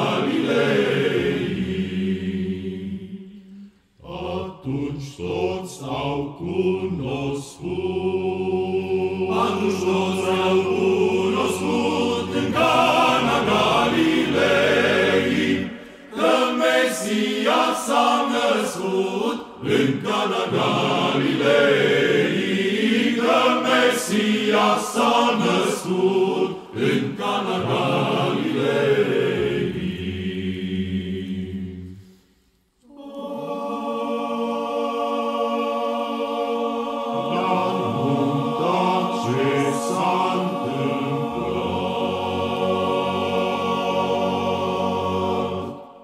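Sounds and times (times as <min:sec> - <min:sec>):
men's choir singing a cappella: 0:00.0 - 0:32.2, 0:32.9 - 0:46.0.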